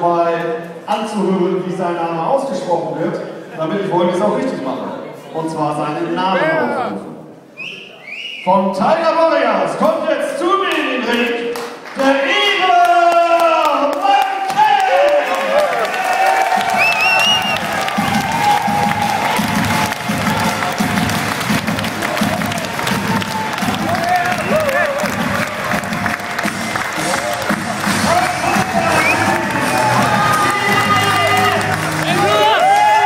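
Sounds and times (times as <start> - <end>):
crowd cheering and shouting: 14.0 - 33.0
entrance music with steady beat: 17.4 - 32.6.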